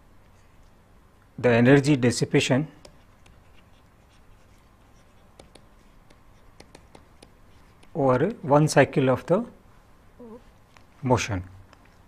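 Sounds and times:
pen scratching on paper: 2.8 - 8.0.

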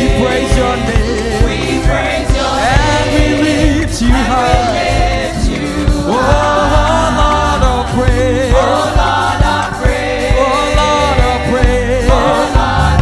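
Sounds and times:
instrumental accompaniment with beat: 0.0 - 13.0
women singing gospel: 0.0 - 13.0.

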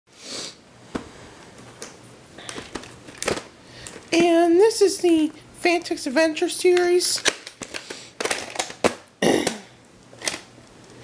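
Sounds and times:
person sniffing: 0.1 - 0.6
plastic tape case clacking: 6.7 - 9.0.

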